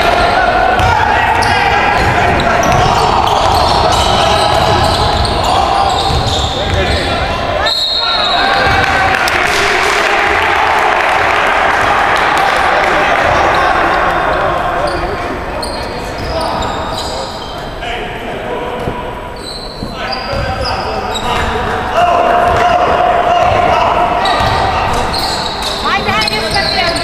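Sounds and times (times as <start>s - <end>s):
crowd voices in gym: 0.0s - 27.0s
basketball bouncing: 0.7s - 7.1s, 8.6s - 9.0s, 19.8s - 20.6s, 22.4s - 22.8s, 23.4s - 25.2s
sneaker squeaks on hardwood: 0.8s - 8.8s, 14.9s - 17.7s, 18.8s - 21.6s, 24.2s - 27.0s.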